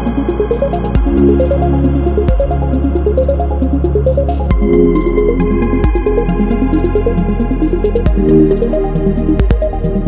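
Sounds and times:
electronic synth music: 0:00.0 - 0:10.0.

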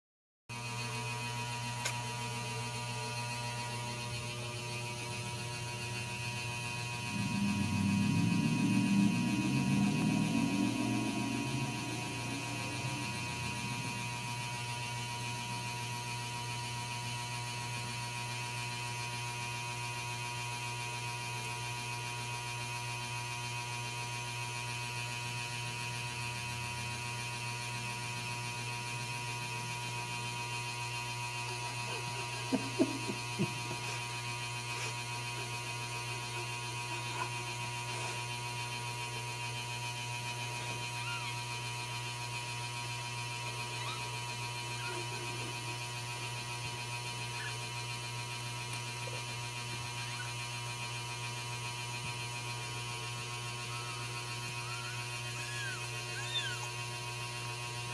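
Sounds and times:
electrical mains hum: 0:00.6 - 0:57.9
high-pitched whine: 0:01.8 - 0:17.2, 0:26.0 - 0:51.0, 0:52.5 - 0:56.8
rough low rumble: 0:06.2 - 0:15.7.

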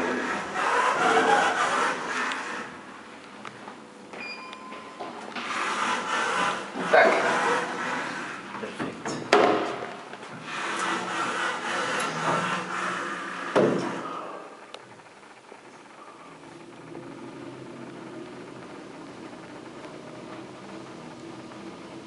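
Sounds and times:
elevator doors sliding shut: 0:00.0 - 0:02.8, 0:04.2 - 0:09.9, 0:10.5 - 0:14.2
elevator button beep: 0:04.1 - 0:05.0
sharp knocks: 0:09.1 - 0:09.9.

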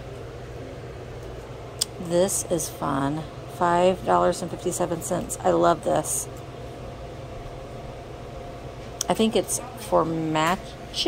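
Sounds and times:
low hum of air handling: 0:00.0 - 0:11.0.

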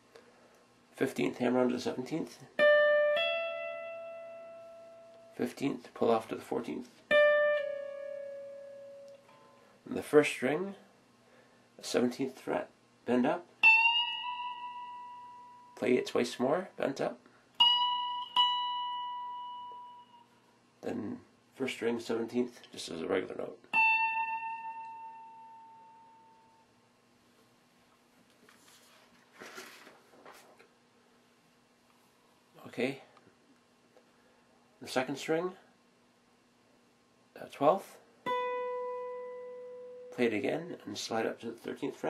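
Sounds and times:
electric guitar note: 0:07.1 - 0:09.7, 0:23.7 - 0:26.6, 0:38.3 - 0:40.2.

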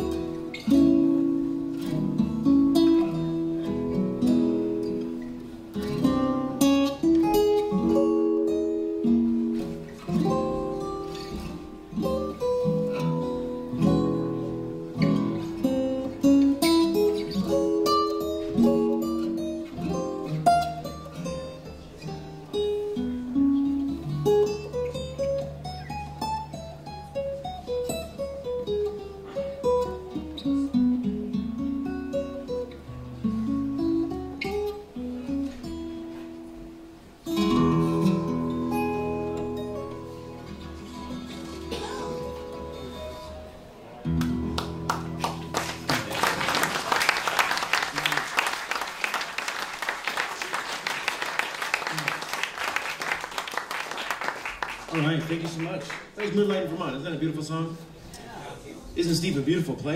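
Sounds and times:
acoustic guitars playing jazz ballad: 0:00.0 - 0:59.9.

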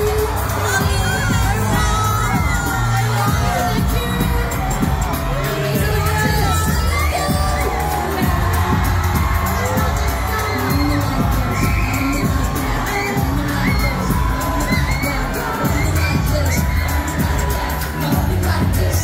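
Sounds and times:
crowd screaming and cheering: 0:00.0 - 0:19.0
pop backing track with bass: 0:00.0 - 0:19.0.

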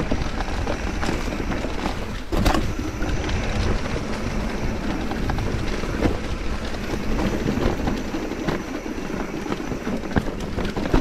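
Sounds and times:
bike rattling: 0:00.0 - 0:11.0
bike tyres rolling over leaves: 0:00.0 - 0:11.0.

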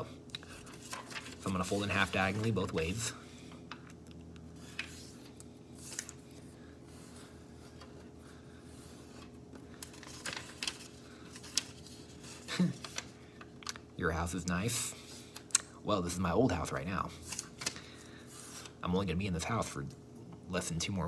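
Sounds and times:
steady low hum: 0:00.0 - 0:21.0
paper crinkling and rubbing: 0:00.4 - 0:03.0, 0:08.7 - 0:13.4.

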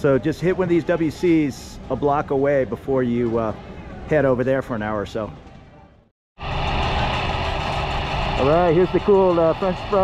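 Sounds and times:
street traffic noise: 0:00.0 - 0:10.0
vehicle engines running: 0:06.4 - 0:10.0.

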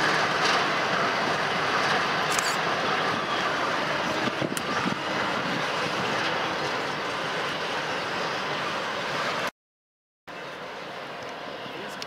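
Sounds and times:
freight train rolling past: 0:00.0 - 0:09.5.

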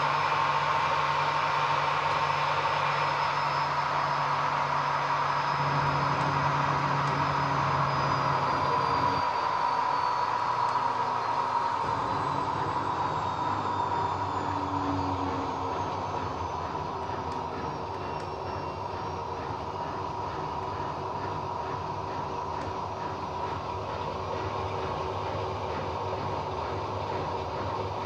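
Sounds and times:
washing machine spinning: 0:00.0 - 0:28.0.

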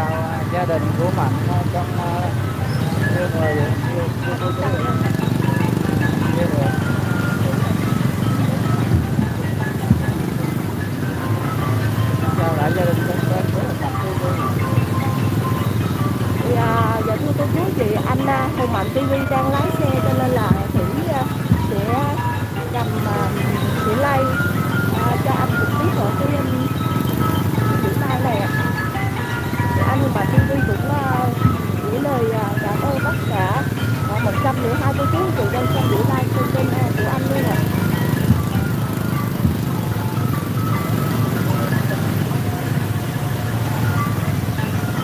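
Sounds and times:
engines running at low speed: 0:00.0 - 0:45.0
music: 0:00.0 - 0:45.0
people's voices: 0:00.0 - 0:45.0.

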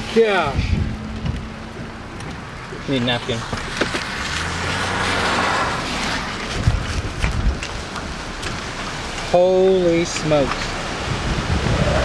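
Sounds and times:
low rumbling buffets: 0:00.0 - 0:12.0
storm wind on microphone: 0:00.4 - 0:02.7, 0:04.6 - 0:09.1, 0:10.5 - 0:12.0.

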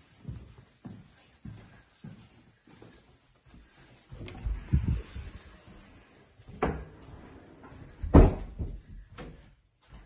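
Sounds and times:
door thudding shut: 0:08.1 - 0:08.8.

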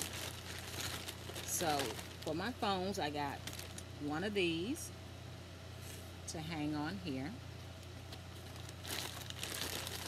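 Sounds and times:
plastic bags crinkling: 0:00.0 - 0:03.9, 0:07.8 - 0:10.0.

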